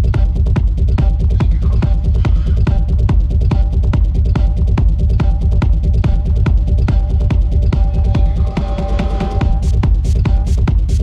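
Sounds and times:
heavy kick-drum beat: 0.0s - 11.0s
techno music: 0.0s - 11.0s.

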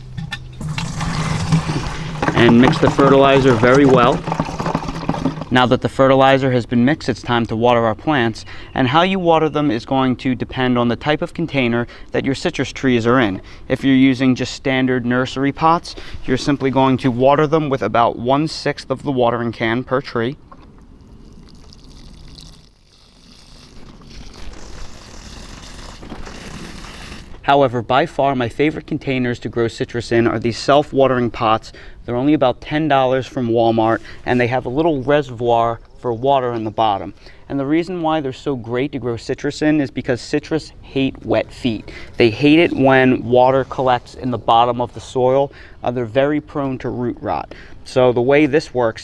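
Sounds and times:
water running into watering can: 0.6s - 5.9s, 21.0s - 27.4s.

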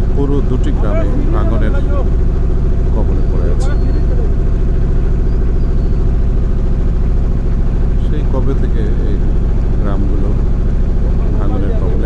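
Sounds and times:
boat engine droning: 0.0s - 12.0s
man speaking: 0.1s - 2.1s, 2.9s - 4.3s, 8.0s - 9.2s, 9.8s - 10.5s, 11.2s - 12.0s.

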